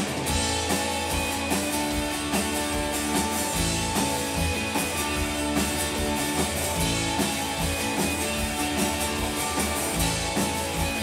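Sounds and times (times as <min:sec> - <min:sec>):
rock band playing live: 0:00.0 - 0:11.0.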